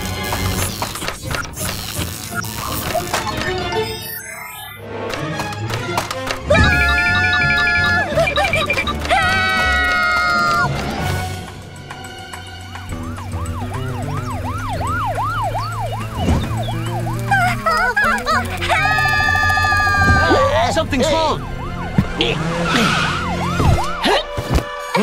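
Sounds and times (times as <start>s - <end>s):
cartoon police siren sweeping: 6.5s - 10.7s, 12.9s - 24.1s
background music with low bass: 10.7s - 17.4s.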